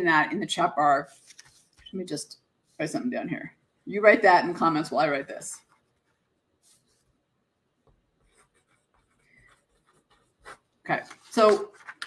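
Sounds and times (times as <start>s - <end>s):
pen scratching on paper: 8.2s - 11.8s.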